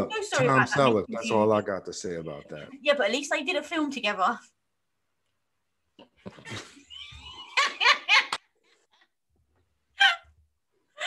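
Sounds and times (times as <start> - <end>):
man and woman laughing: 6.4 - 8.4.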